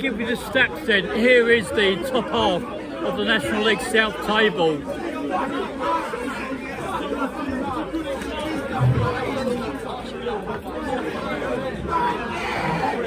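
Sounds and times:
crowd chatter: 0.0s - 13.0s.

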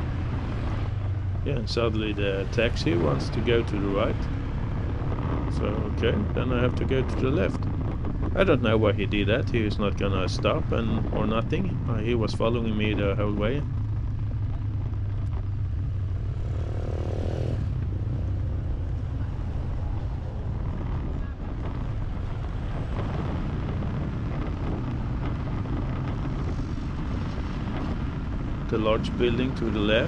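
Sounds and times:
surrounding traffic: 0.0s - 30.0s
vehicle driving along street: 0.0s - 30.0s.

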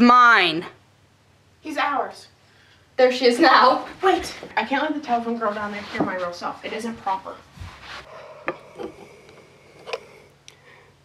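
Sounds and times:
faint rustling: 3.8s - 8.1s.

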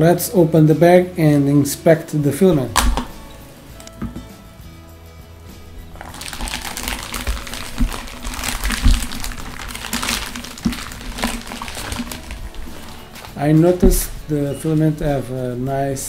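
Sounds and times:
background music: 0.0s - 16.0s
plastic bag crinkling: 5.8s - 14.3s.

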